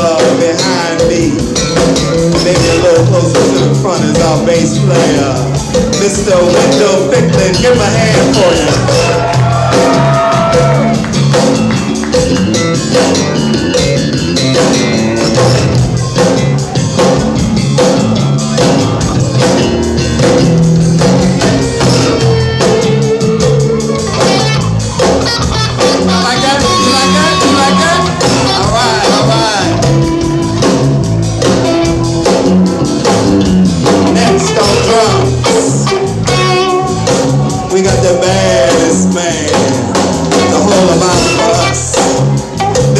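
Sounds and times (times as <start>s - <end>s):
bass guitar solo: 0.0s - 42.9s
drum kit: 0.0s - 42.9s
live band music: 0.0s - 42.9s.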